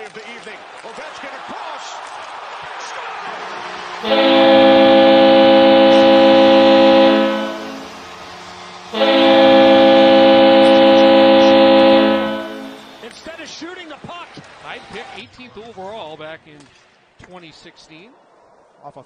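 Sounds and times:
hockey goal horn blasts: 4.0s - 13.3s.

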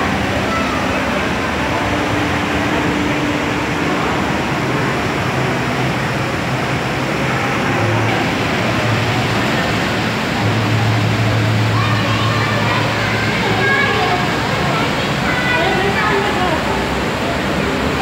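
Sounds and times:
distant voices: 0.0s - 18.0s.

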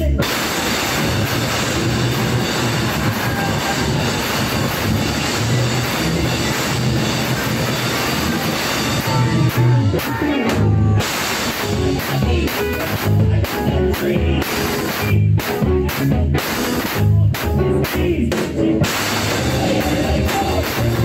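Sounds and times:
loud hip-hop music: 0.0s - 21.0s.

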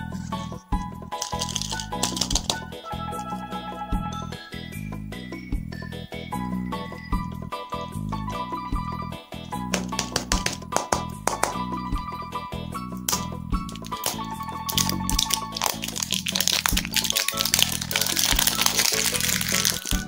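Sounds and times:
background music: 0.0s - 20.0s
plastic wrapper crinkling: 1.1s - 3.4s, 13.6s - 20.0s.

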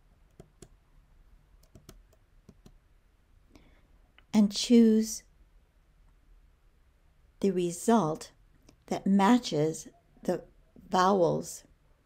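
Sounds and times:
keyboard keys typing: 1.6s - 2.8s.

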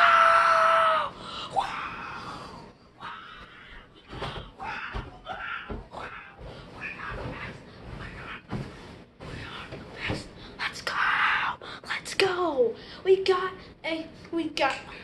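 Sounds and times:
boy screaming excitedly: 0.0s - 1.1s.

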